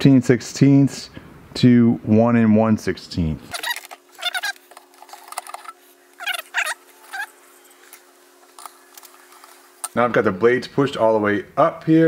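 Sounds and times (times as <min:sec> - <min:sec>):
faint steady hum: 0:00.0 - 0:12.0
sped-up squeaky speech: 0:03.5 - 0:04.6.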